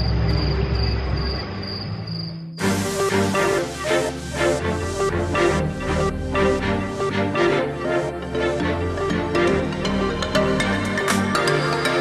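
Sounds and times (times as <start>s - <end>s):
night insects chirping: 0.0s - 2.8s.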